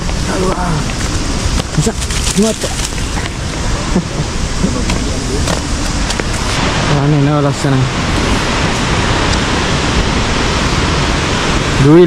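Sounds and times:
waterfall roaring: 0:00.0 - 0:12.0
person speaking: 0:01.7 - 0:05.9.

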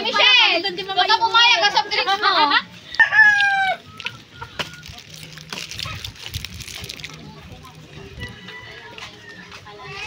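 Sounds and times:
rooster crowing: 0:03.0 - 0:04.0, 0:08.1 - 0:09.6.

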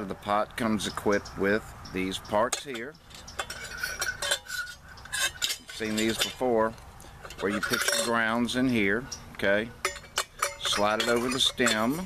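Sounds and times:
metal percolator parts clinking: 0:01.9 - 0:12.0.

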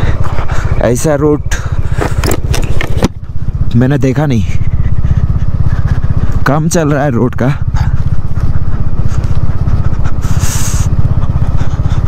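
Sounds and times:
motorcycle engine running: 0:00.0 - 0:12.0
tyres on gravel road: 0:00.0 - 0:12.0.

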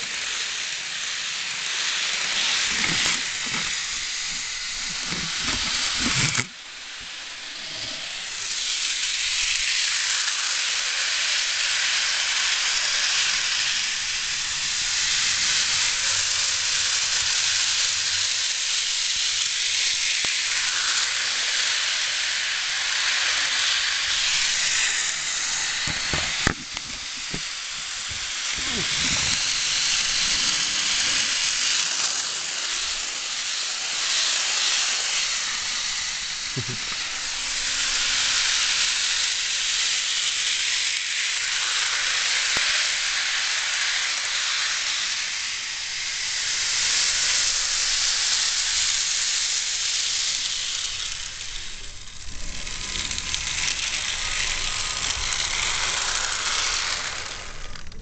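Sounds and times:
model train rattling on track: 0:00.0 - 0:58.0.

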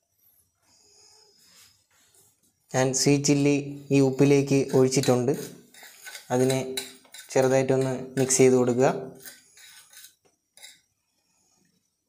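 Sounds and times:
metal spoon clinking on glass plate: 0:05.8 - 0:08.5, 0:09.1 - 0:10.8.

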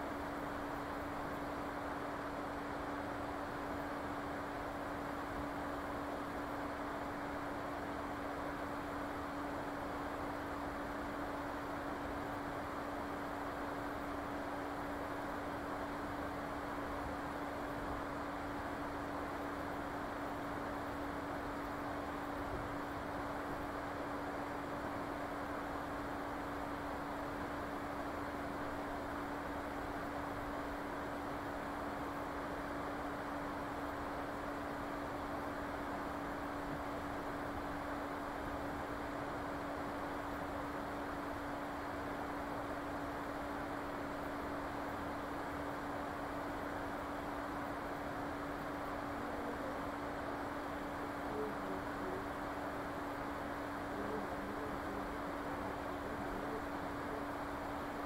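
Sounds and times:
constant low hum: 0:00.0 - 0:58.0.

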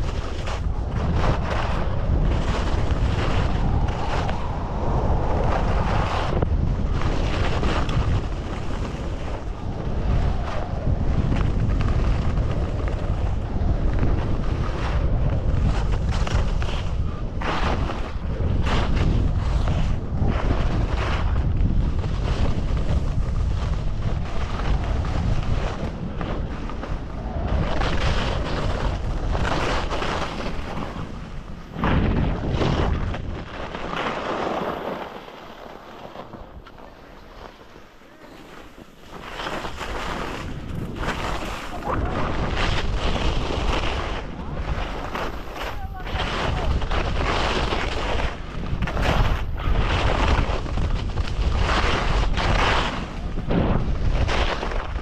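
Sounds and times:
skis scraping on hard snow: 0:00.0 - 0:55.0
wind buffeting microphone: 0:00.0 - 0:55.0.

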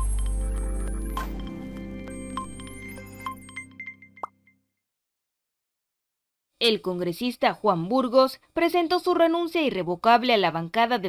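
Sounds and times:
held electronic chord: 0:00.0 - 0:04.2.

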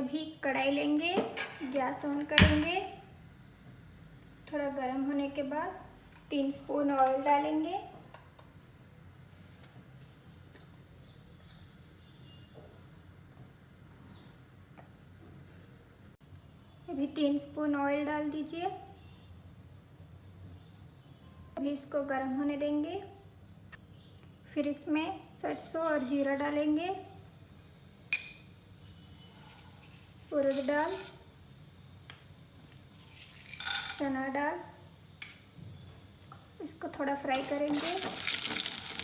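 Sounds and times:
oil heating in a pan: 0:24.7 - 0:39.0.

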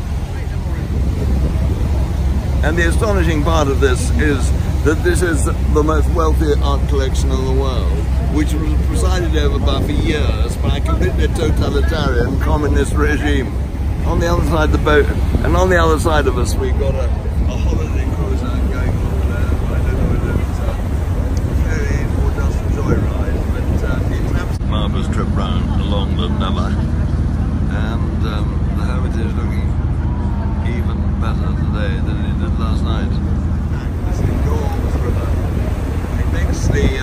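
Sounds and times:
boat engine: 0:00.0 - 0:37.0
passengers talking: 0:00.0 - 0:37.0
wind rumbling on microphone: 0:00.0 - 0:37.0.

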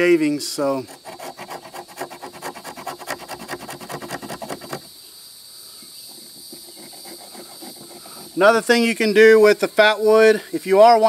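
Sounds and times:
steady high hiss: 0:00.0 - 0:11.0
knife scraping wood: 0:00.7 - 0:04.9, 0:06.0 - 0:08.6.

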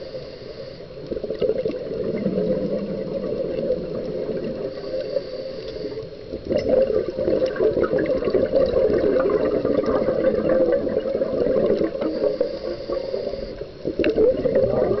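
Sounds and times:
underwater bubbles gurgling: 0:00.0 - 0:15.0.

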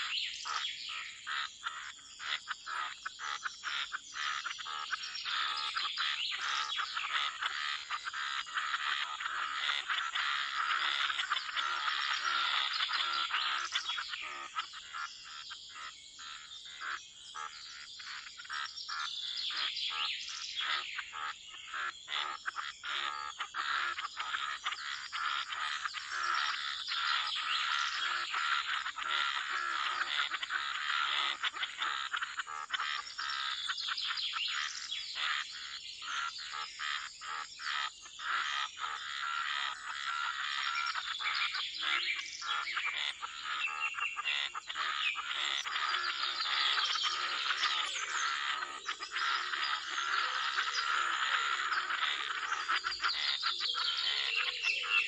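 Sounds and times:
birds calling: 0:00.0 - 0:55.0
frogs calling: 0:00.0 - 0:55.0.

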